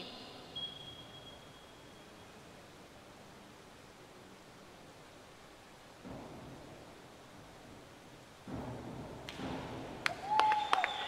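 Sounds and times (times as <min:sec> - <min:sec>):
sharp claps: 0:08.5 - 0:11.0.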